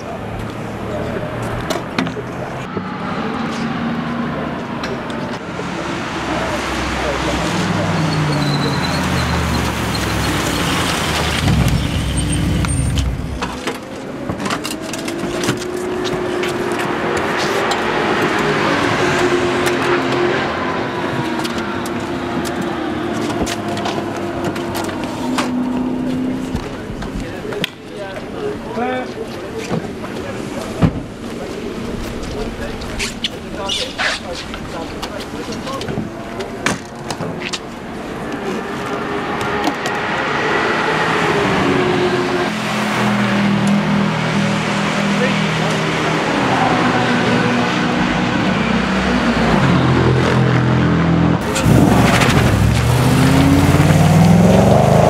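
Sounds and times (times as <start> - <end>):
people's voices: 0.0 - 55.0
race car engines revving: 0.0 - 55.0.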